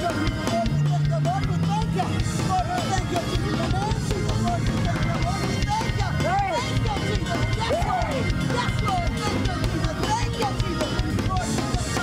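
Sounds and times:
driving drum beat: 0.0 - 12.0
fast church praise music: 0.0 - 12.0
voices crying out: 0.0 - 12.0.

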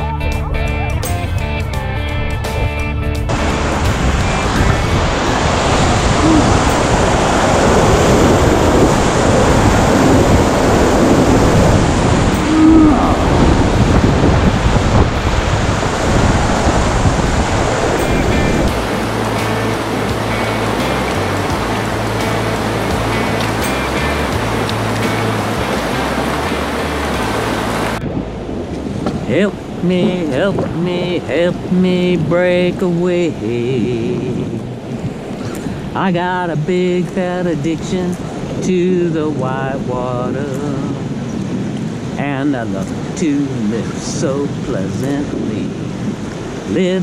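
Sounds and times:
background music with low beat: 0.0 - 5.2, 18.0 - 27.9
water rushing through rapids: 3.3 - 47.0.

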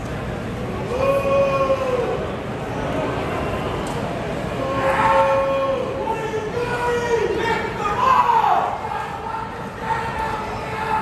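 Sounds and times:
ballpark crowd noise: 0.0 - 11.0.

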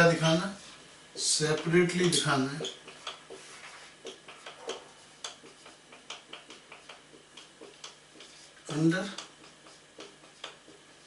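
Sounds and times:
marker writing on whiteboard: 1.2 - 11.0.

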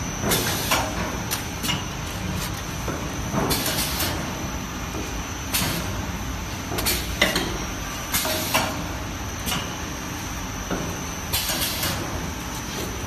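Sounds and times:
machine humming and whining: 0.0 - 13.0.

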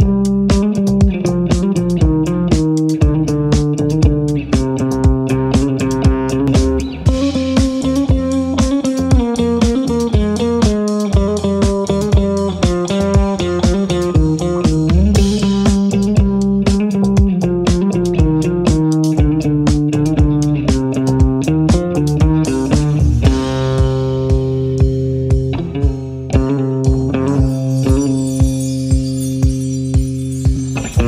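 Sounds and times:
bass guitar: 0.0 - 31.0
drums: 0.0 - 31.0
electric guitar riff: 0.0 - 31.0.

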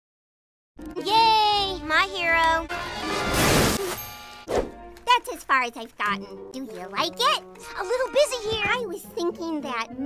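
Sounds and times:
background music: 0.8 - 10.0
cartoon noise burst: 3.0 - 4.2.

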